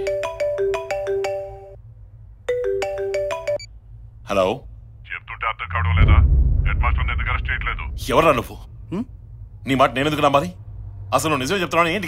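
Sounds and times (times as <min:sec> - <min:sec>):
mobile phone ringtone: 0:00.0 - 0:01.8, 0:02.5 - 0:03.7.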